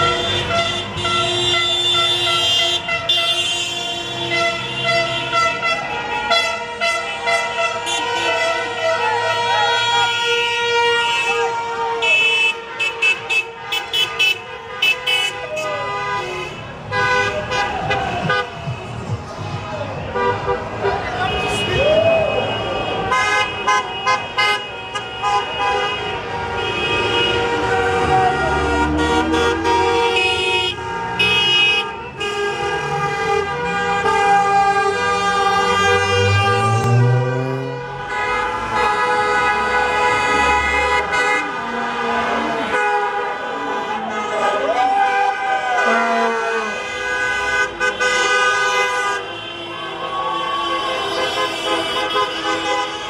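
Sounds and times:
car horns honking: 0.0 - 44.8, 45.6 - 53.0
car engines revving: 15.3 - 53.0
people shouting: 16.9 - 23.5, 27.3 - 31.4, 43.5 - 46.8.

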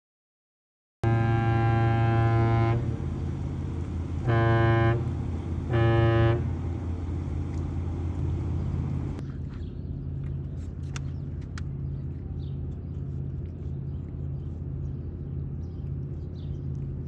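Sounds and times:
ship horn blasts: 1.0 - 9.2.

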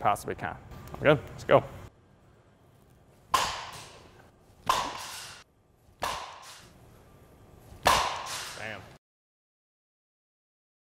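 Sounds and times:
bat cracking softball: 3.3 - 6.8, 7.7 - 8.7.

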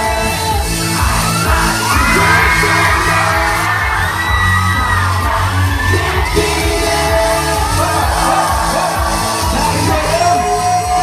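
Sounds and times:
crowd whooping and yelling: 0.0 - 11.0
live pop music: 0.0 - 11.0.

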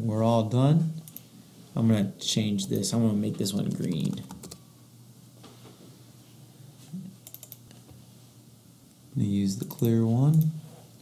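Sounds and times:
keyboard and mouse clicks: 7.2 - 7.8.

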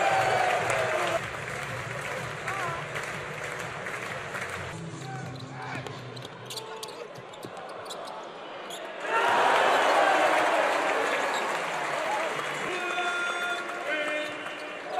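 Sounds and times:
crowd cheering: 0.0 - 4.8, 9.0 - 14.9.

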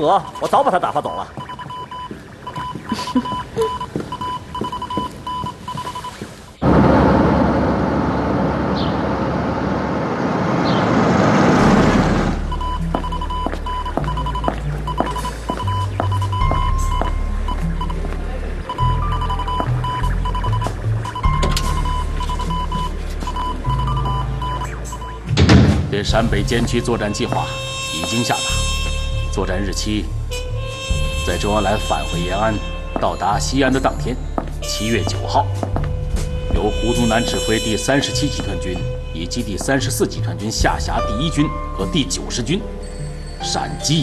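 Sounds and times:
morse code beeps: 0.0 - 6.2, 12.5 - 18.0, 18.7 - 25.3
background music with low notes: 12.3 - 44.0.

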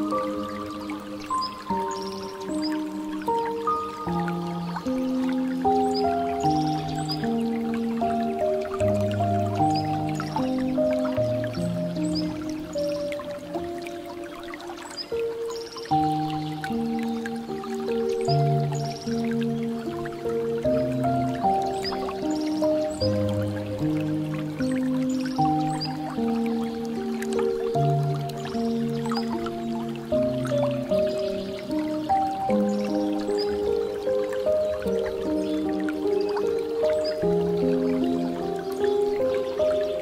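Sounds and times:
soft piano chords: 0.0 - 40.0
water trickling and dripping: 0.0 - 40.0.

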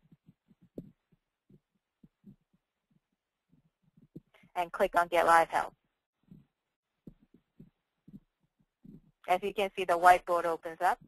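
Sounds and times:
soft low thumps: 0.0 - 4.4, 6.2 - 9.3.

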